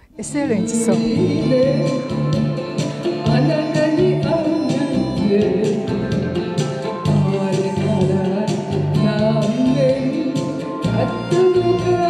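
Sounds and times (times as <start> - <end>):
woman singing into a microphone: 0.0 - 2.1
backing track with steady beat: 0.0 - 12.0.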